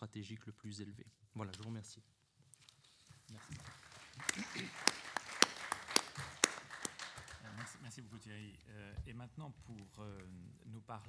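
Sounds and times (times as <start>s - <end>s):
scattered light clapping: 3.1s - 8.0s
loud hand claps: 3.3s - 8.0s.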